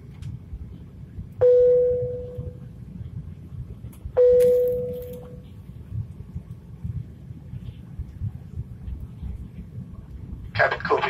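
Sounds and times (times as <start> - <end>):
low cabin rumble: 0.0 - 11.0.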